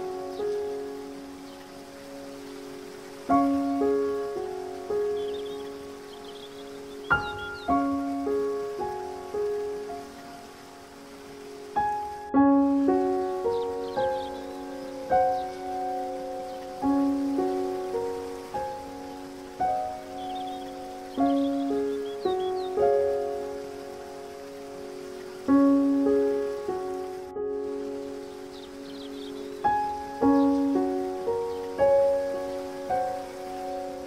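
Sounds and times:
faint bird chirps: 0:00.0 - 0:09.2, 0:12.8 - 0:23.3, 0:27.7 - 0:33.8
gentle solo piano: 0:00.0 - 0:34.0
water hissing: 0:00.0 - 0:34.0.

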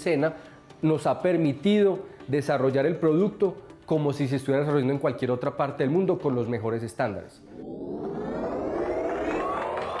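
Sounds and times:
synthetic rising whoosh: 0:07.6 - 0:10.0.

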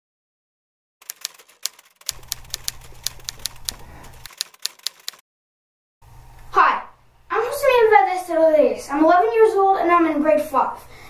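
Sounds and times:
typewriter keys clicking: 0:01.0 - 0:05.2.

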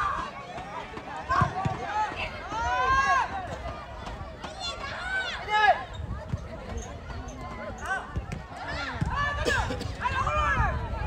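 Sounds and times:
players shouting: 0:00.0 - 0:06.0, 0:07.2 - 0:11.0
outdoor background noise: 0:00.0 - 0:11.0.

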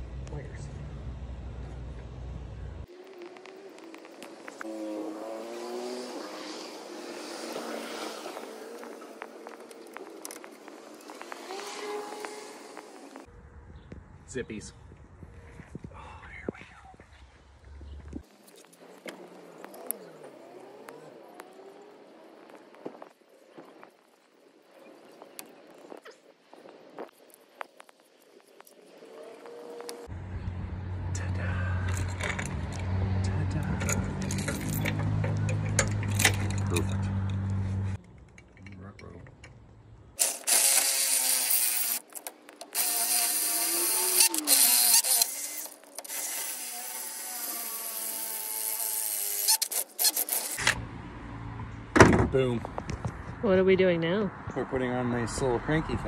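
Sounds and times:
cordless drill running: 0:40.2 - 0:42.0, 0:42.7 - 0:50.6.

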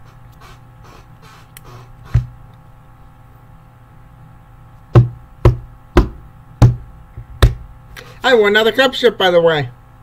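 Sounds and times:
faint steady hum: 0:00.0 - 0:10.0
sharp knocks: 0:04.9 - 0:07.6.

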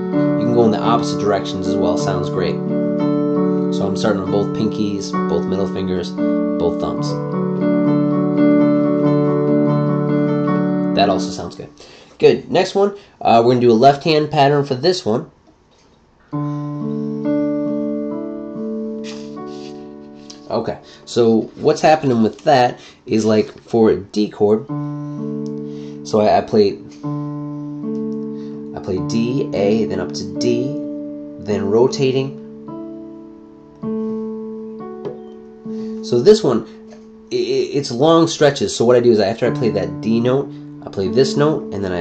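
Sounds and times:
piano broken chord: 0:00.0 - 0:12.4, 0:16.3 - 0:22.3, 0:24.6 - 0:42.0.

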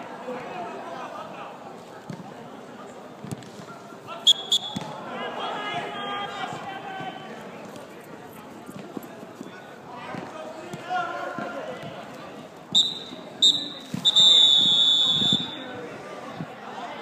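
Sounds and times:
players calling out: 0:04.2 - 0:07.3, 0:12.7 - 0:15.8
high-pitched whistle blasts: 0:04.3 - 0:04.8, 0:12.8 - 0:15.6.

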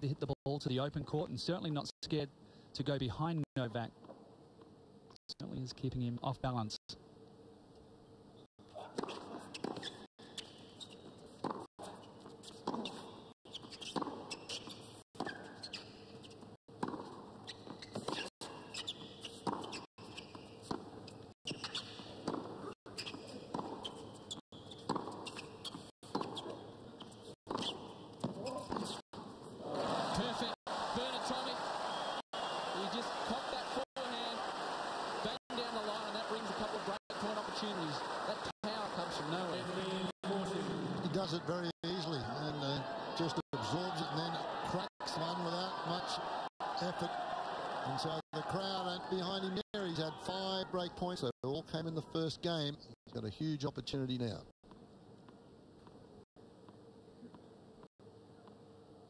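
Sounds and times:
tennis ball bounces: 0:08.8 - 0:11.7, 0:12.4 - 0:29.0
crowd cheering and applause: 0:29.6 - 0:40.1, 0:42.4 - 0:49.6.

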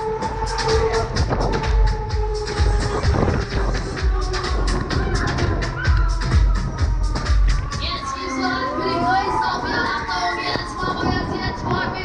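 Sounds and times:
fairground ride music: 0:00.0 - 0:12.0
riders shouting and whooping: 0:04.2 - 0:12.0.

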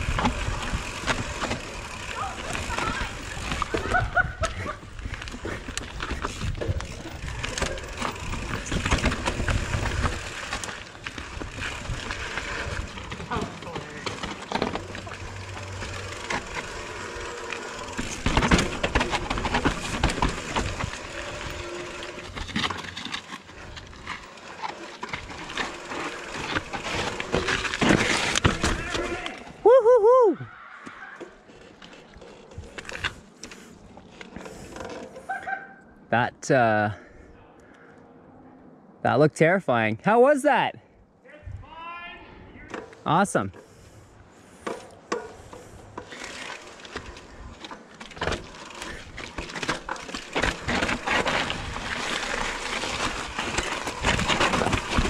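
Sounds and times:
bike knocks and rattles: 0:00.0 - 0:29.4, 0:44.5 - 0:55.0
bike tyres crunching over rock: 0:00.0 - 0:29.6, 0:45.3 - 0:55.0.

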